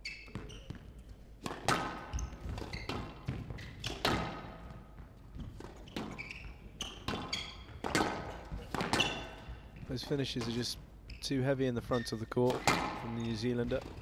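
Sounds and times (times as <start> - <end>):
shoes squeaking on court floor: 0.0 - 14.0
squash ball cracking off rackets: 1.4 - 4.7, 6.8 - 10.6, 12.5 - 13.1.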